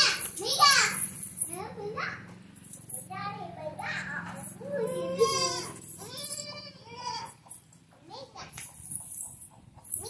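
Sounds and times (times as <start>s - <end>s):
baby goat bleating: 4.8s - 7.4s.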